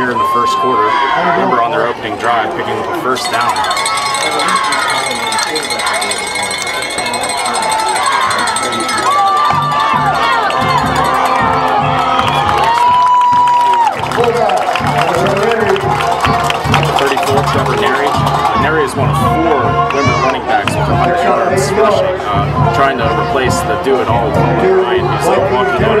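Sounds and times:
crowd cheering and shouting: 0.0s - 26.0s
drum-led music: 3.2s - 26.0s.

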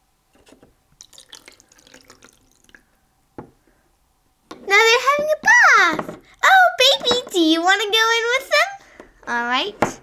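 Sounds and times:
water trickling into plastic tub: 1.0s - 2.9s.

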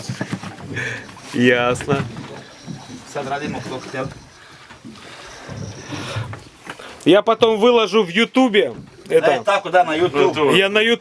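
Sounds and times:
sea noise: 0.0s - 11.0s.

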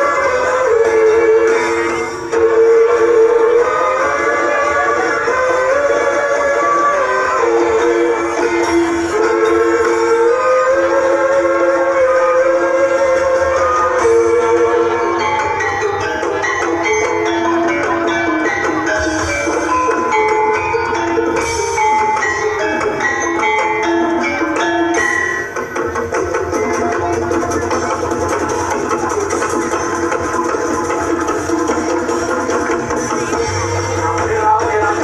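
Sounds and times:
drums: 0.0s - 35.0s
pitched percussion fast run: 0.0s - 35.0s.

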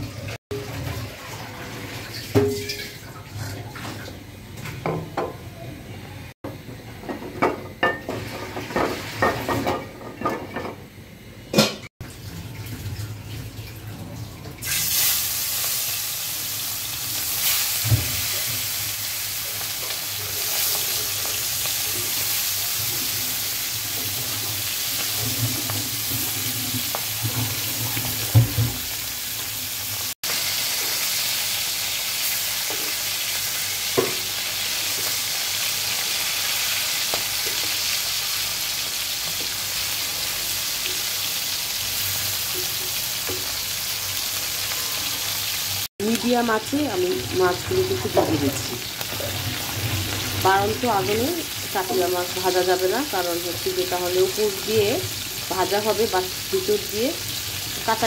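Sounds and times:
fish sizzling in hot oil: 14.6s - 58.0s.

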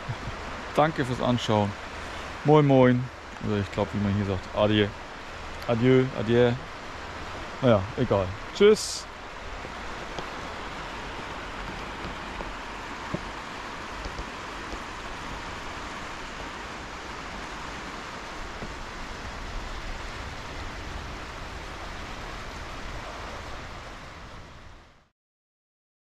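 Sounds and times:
small waves lapping on shore: 0.0s - 25.0s.

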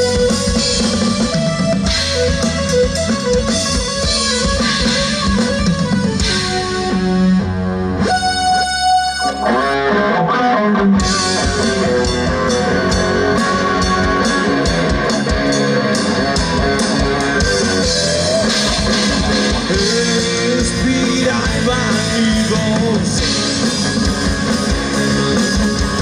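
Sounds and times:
bass guitar: 0.0s - 26.0s
distorted electric guitar: 0.0s - 26.0s
drums: 0.0s - 26.0s.

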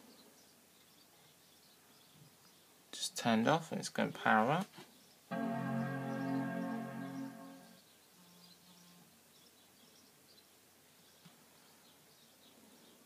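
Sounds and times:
computer startup chime: 5.3s - 7.8s.

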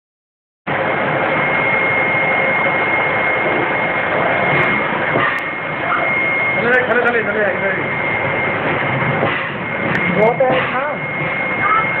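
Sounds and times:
printing machine running: 0.7s - 12.0s.

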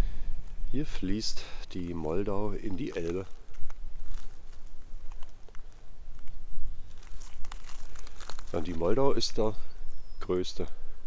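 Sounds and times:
faint clicks and crackles: 2.6s - 9.1s.

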